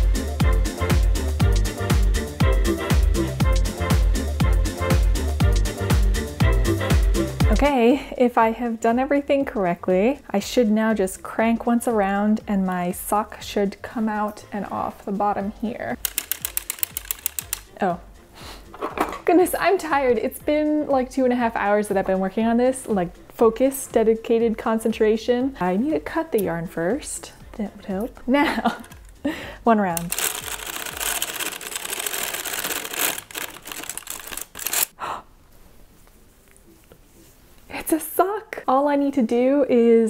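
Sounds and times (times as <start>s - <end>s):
hand-cranked sock machine clicking: 16.0s - 17.7s, 30.0s - 34.9s.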